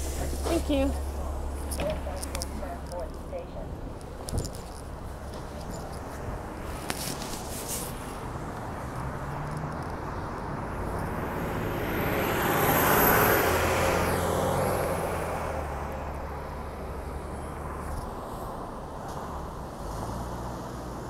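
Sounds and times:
bus passing close by: 0.0 - 2.9, 6.0 - 21.0
road traffic hum: 0.0 - 21.0.

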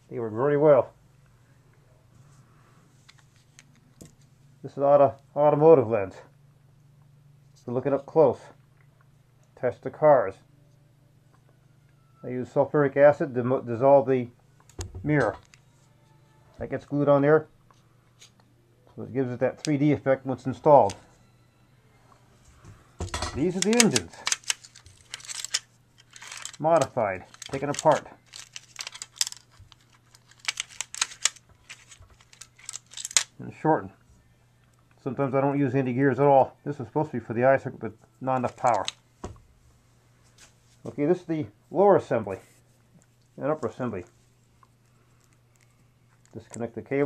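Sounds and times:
small metal motors clinking: 23.1 - 33.3.

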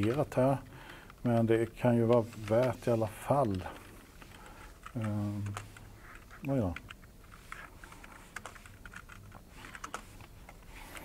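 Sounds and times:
keyboard typing: 0.0 - 11.0.

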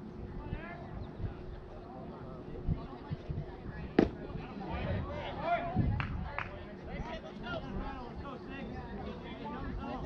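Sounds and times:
baseball bat crack: 4.0 - 4.4.

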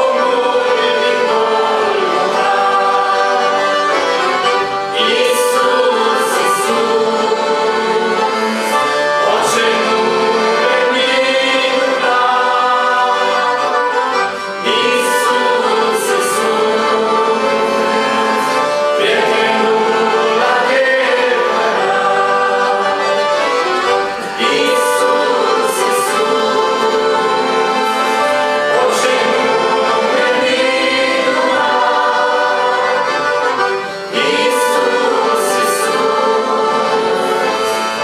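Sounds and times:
button accordion: 0.0 - 38.0
group singing a hymn: 0.0 - 38.0.

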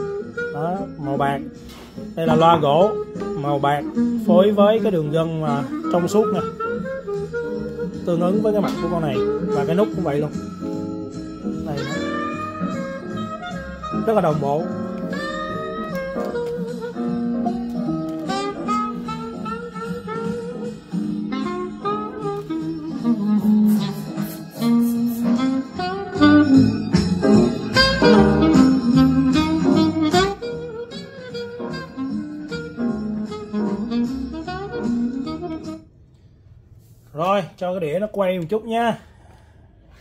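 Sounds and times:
instrumental guitar music on speakers: 0.0 - 4.7, 5.4 - 35.8.

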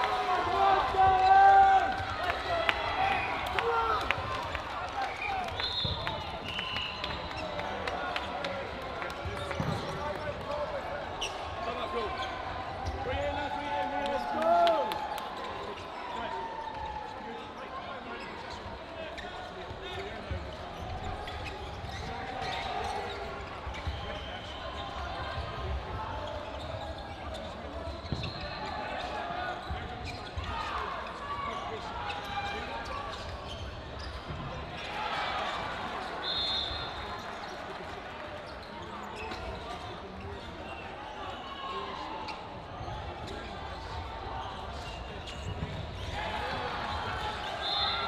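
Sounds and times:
overlapping players' voices: 0.0 - 17.5.

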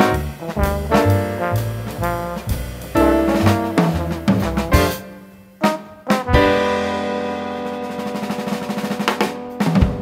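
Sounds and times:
held brass chord: 0.0 - 8.8
bass drum accents: 0.0 - 10.0
snare drum roll: 0.0 - 10.0.

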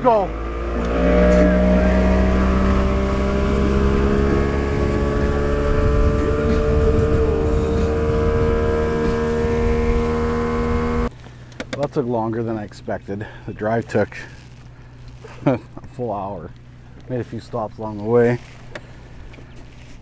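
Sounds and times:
outboard motor droning: 0.0 - 20.0.

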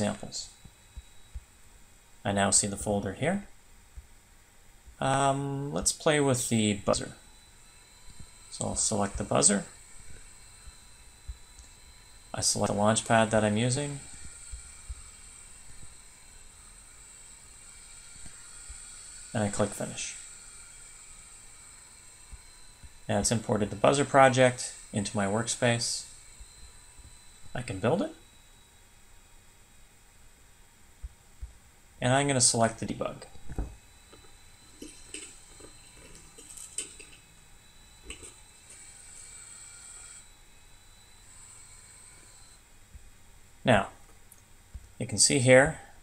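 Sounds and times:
faint high whine: 0.0 - 46.0
steady background hiss: 0.0 - 46.0.

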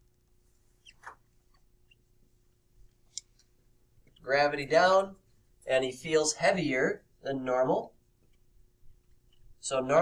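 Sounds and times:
marker squeaking on whiteboard: 0.8 - 2.2.

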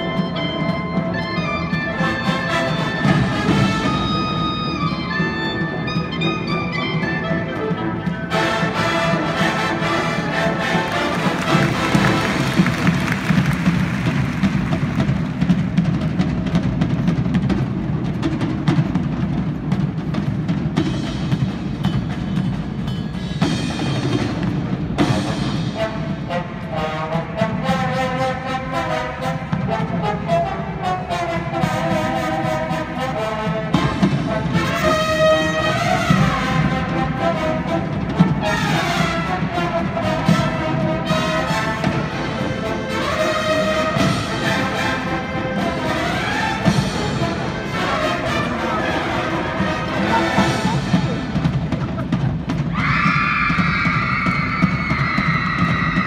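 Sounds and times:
brass playing: 0.0 - 15.7, 25.4 - 51.6
percussion: 0.0 - 56.0
steady drum beat: 8.3 - 26.7, 31.6 - 56.0.

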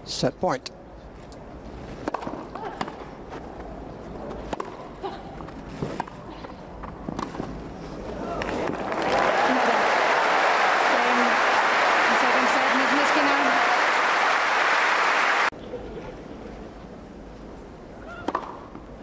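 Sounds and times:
racket hitting tennis ball: 2.0 - 3.0, 4.5 - 4.8
crowd murmur: 8.1 - 16.2
crowd applause: 8.4 - 15.5.

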